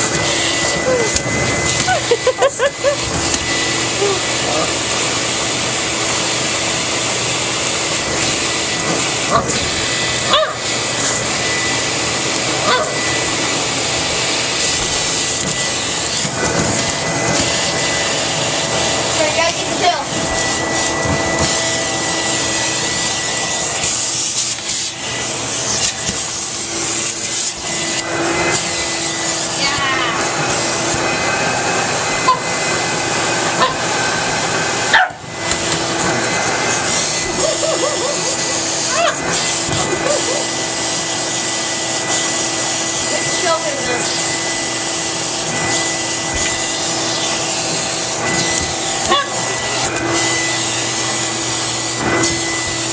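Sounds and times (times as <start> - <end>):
vacuum cleaner running: 0.0 - 52.9
puppy barking: 10.2 - 10.7, 12.6 - 13.0, 33.6 - 33.9, 34.9 - 35.3, 37.4 - 39.3, 39.9 - 40.5, 49.0 - 49.5.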